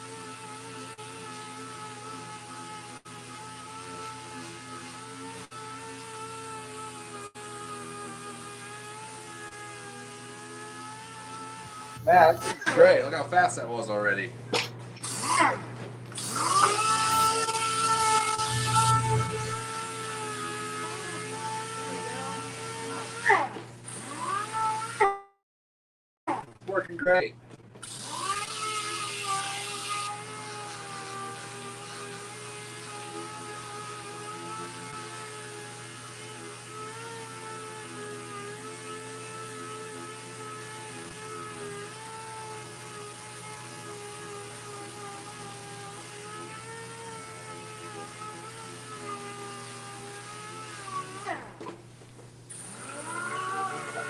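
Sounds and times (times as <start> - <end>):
air sander whine and hiss: 0.0 - 13.2, 16.2 - 23.2, 27.9 - 51.4.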